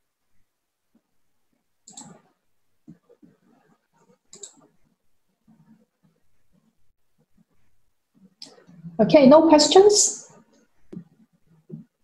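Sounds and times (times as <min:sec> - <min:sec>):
faint room sounds: 0:00.0 - 0:12.0
computer mouse click: 0:01.8 - 0:02.2, 0:04.3 - 0:04.6.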